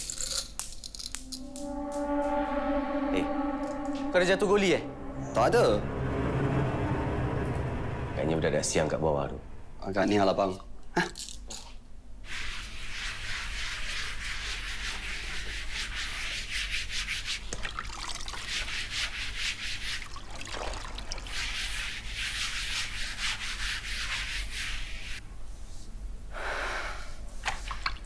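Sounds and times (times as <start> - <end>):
wet cloth scrubbing floor: 12.3 - 25.2
cloth wrung out over bucket: 17.4 - 19.2, 19.8 - 22.0.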